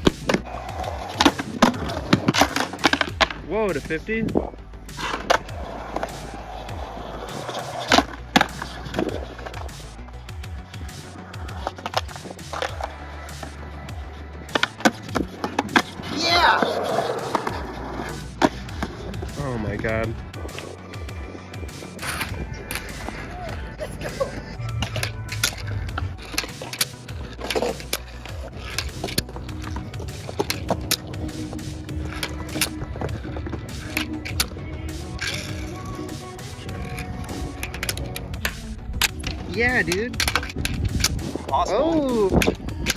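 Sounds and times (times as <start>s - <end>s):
skateboard clacking on ground: 0.0s - 13.6s, 14.4s - 42.9s
background music: 0.0s - 42.9s
skateboard wheels rolling on concrete: 0.0s - 42.9s.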